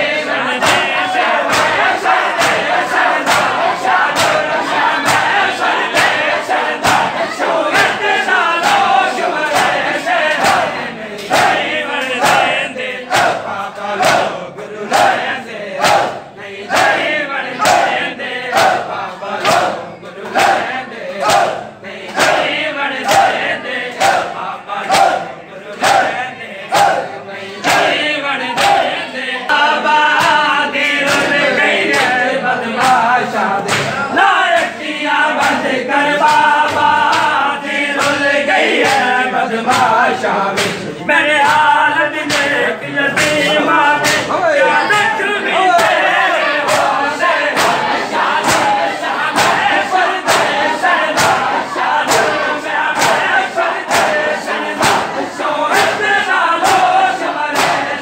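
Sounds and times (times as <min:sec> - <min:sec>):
men chanting: 0:00.0 - 0:58.0
men slapping chests: 0:00.0 - 0:58.0.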